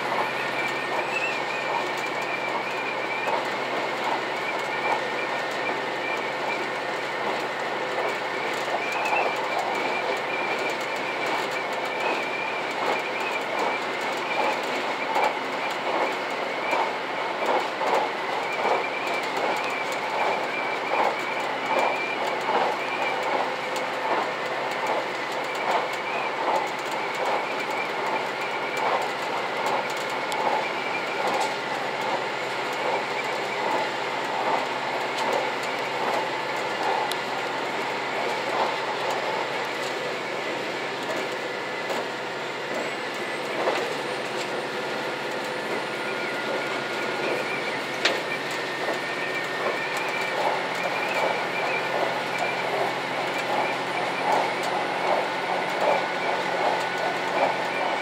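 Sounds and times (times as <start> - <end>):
wavering wheel squeal: 0.0 - 7.0, 42.7 - 58.0
train running noise: 0.0 - 58.0
wheels clickety-clack over rail joints: 0.0 - 58.0.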